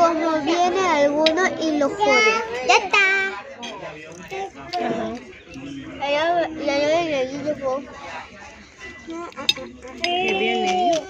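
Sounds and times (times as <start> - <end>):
faint background voices: 0.0 - 11.0
cutlery clink: 3.6 - 5.0, 9.3 - 11.0.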